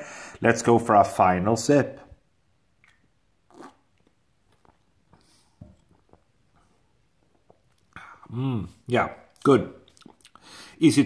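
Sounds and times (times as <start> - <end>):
person sipping and swallowing: 2.8 - 10.6.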